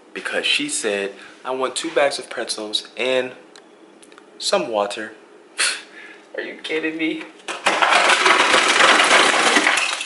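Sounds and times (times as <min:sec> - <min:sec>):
ice cubes clattering into plastic cup: 0:07.5 - 0:10.0.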